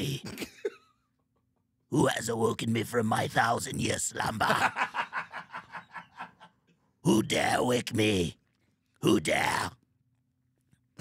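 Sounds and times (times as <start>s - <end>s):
man chuckling: 0.2s - 1.3s, 4.4s - 6.7s.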